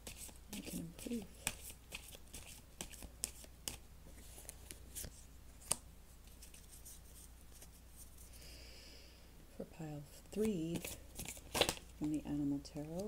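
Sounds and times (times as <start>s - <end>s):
cards shuffling snaps and clicks: 0.0s - 3.8s, 4.4s - 7.8s, 10.4s - 12.2s.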